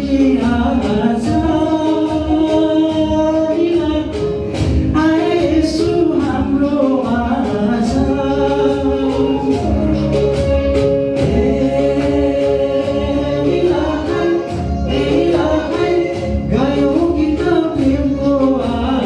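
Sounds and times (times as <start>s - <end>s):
backing music with a beat: 0.0s - 19.0s
man singing into a microphone: 0.0s - 19.0s.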